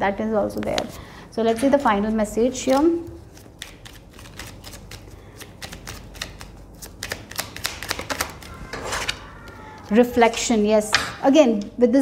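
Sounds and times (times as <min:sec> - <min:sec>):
cards being shuffled: 0:02.6 - 0:10.0.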